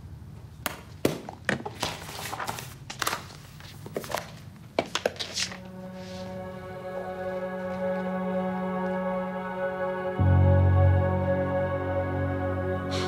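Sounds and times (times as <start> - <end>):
papers rustling: 0.9 - 6.4
music with low held note: 5.5 - 13.0.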